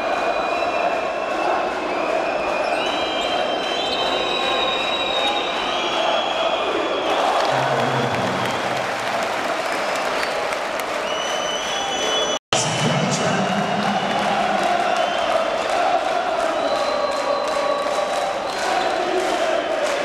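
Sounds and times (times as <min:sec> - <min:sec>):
arena crowd noise: 0:00.0 - 0:20.0.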